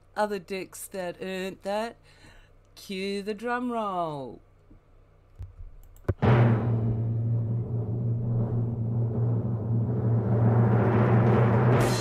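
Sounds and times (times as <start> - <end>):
cymbal crash: 6.2 - 12.0
deep drum roll: 6.2 - 12.0.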